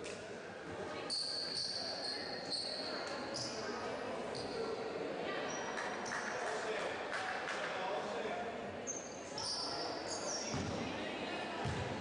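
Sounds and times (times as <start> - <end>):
background voices in gym: 0.0 - 12.0
sneaker squeaks on hardwood: 1.1 - 2.8
basketball bouncing: 11.6 - 12.0.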